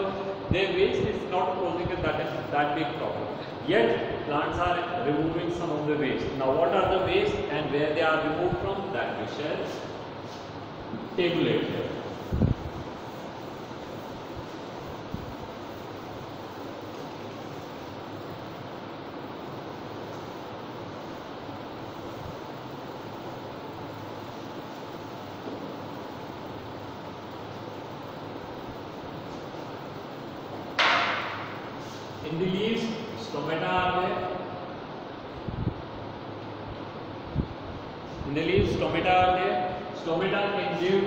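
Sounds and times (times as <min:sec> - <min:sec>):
duster rubbing chalkboard: 0:11.3 - 0:18.2.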